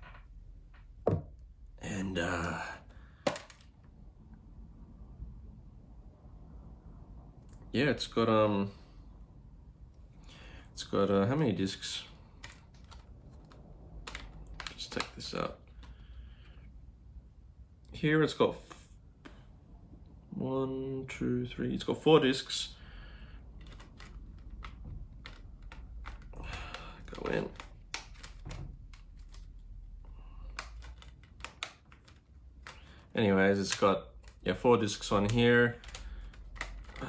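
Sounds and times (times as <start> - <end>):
plastic case clicks and taps: 3.3 - 3.6
plastic case clicking: 35.2 - 37.0.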